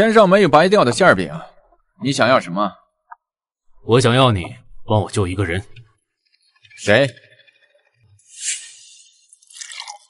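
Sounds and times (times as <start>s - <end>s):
wine splashing into a cup: 9.4s - 10.0s.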